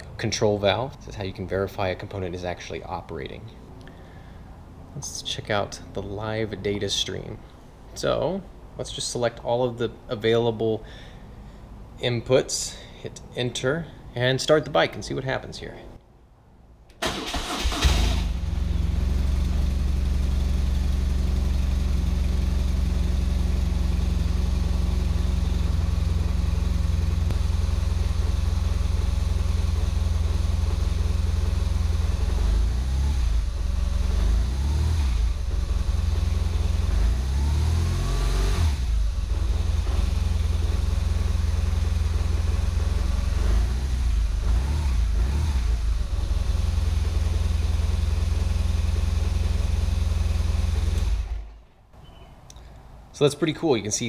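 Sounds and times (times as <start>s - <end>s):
motorcycle engine starter: 17.0s - 18.5s
motorcycle engine revving: 17.3s - 51.6s
motorcycle engine idling: 18.3s - 34.4s, 35.2s - 37.2s, 38.8s - 51.6s.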